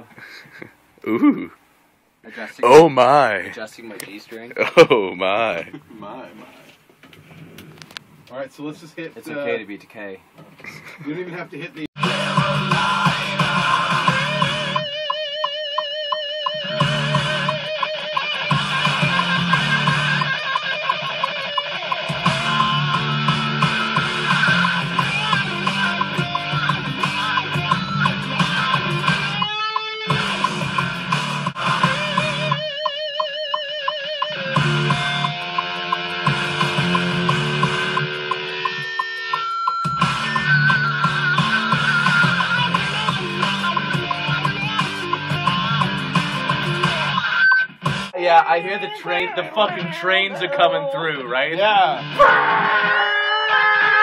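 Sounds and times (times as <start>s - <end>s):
distorted electric guitar: 12.0s - 48.2s, 51.4s - 54.0s
rock music with steady beat: 12.0s - 50.3s, 50.9s - 53.5s.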